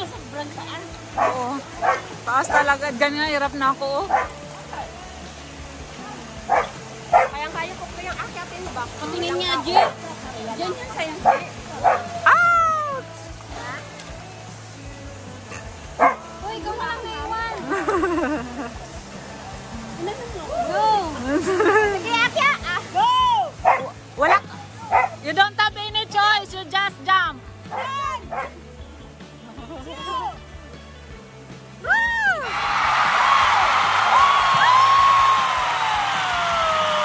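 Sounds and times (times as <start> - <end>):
dog yelping: 1.2 - 2.6, 11.2 - 12.6, 23.6 - 25.2, 27.7 - 28.5
dog barking: 1.2 - 2.7, 4.1 - 4.9, 6.5 - 7.4, 11.2 - 12.4, 15.5 - 16.2, 23.6 - 25.2, 27.7 - 28.6.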